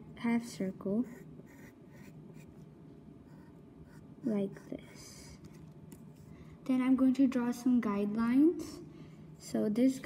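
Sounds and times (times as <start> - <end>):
pencil scratching on paper: 0.7 - 6.3.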